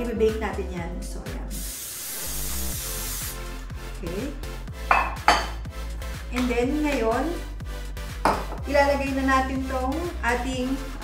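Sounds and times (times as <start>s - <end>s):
aerosol spray hissing: 1.4s - 3.6s
glass dish knocking on counter: 4.9s - 5.6s, 8.2s - 8.6s.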